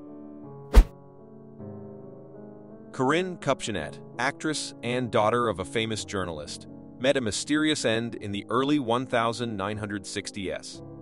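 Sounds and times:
loud deep thud: 0.7s - 0.9s.

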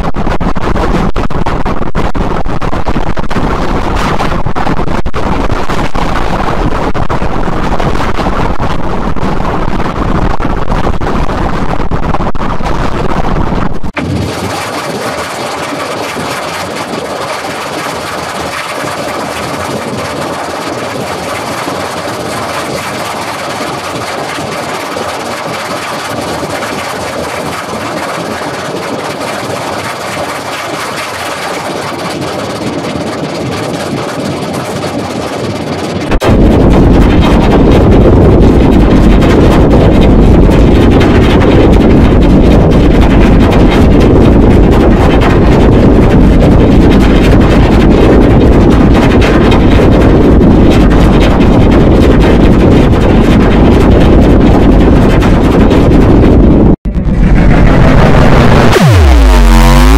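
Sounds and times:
dense low rumble: 0.0s - 59.9s
harsh distorted noise: 0.0s - 59.9s.

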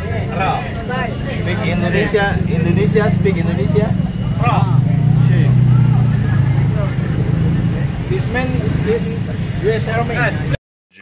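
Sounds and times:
scooter engines droning: 0.0s - 10.6s
faint voices: 0.0s - 11.0s.

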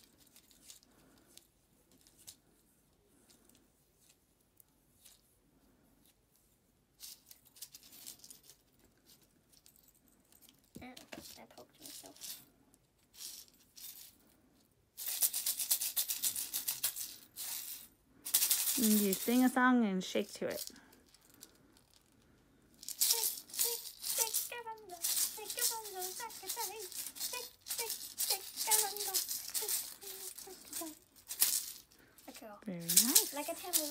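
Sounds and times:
homemade shaker rattling: 0.0s - 33.9s
adhesive tape crackling: 22.9s - 31.9s
child singing: 23.2s - 31.0s.

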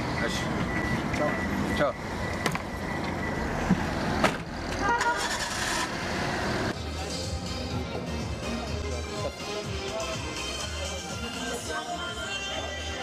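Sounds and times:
repeating beep: 0.1s - 3.6s
music: 6.7s - 13.0s.

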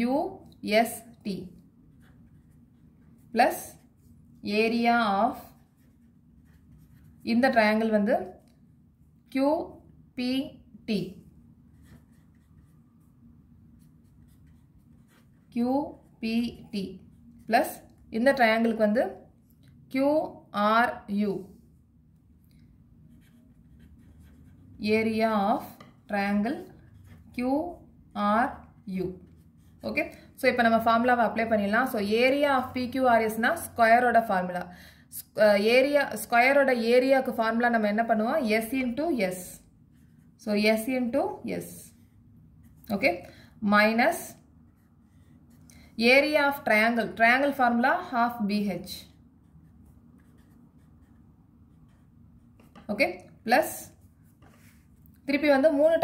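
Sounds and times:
woman speaking: 0.0s - 1.6s, 3.2s - 3.8s, 4.4s - 5.6s, 7.2s - 8.4s, 9.3s - 11.3s, 15.5s - 19.3s, 19.9s - 21.6s, 24.8s - 39.7s, 40.4s - 42.0s, 42.8s - 44.4s, 46.0s - 49.2s, 52.8s - 54.0s, 55.2s - 56.0s
pen scratching on paper: 1.9s - 8.4s, 11.7s - 17.9s, 23.0s - 27.9s, 29.1s - 30.1s, 44.0s - 45.7s, 49.0s - 53.0s.

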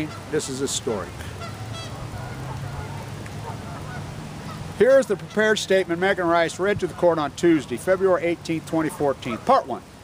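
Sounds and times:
distant geese honking: 0.0s - 0.3s, 1.2s - 5.6s.

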